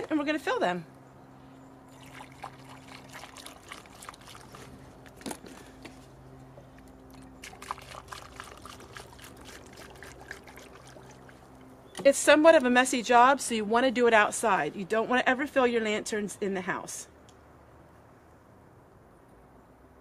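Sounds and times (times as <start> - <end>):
oil trickling through funnel: 1.8 - 12.0.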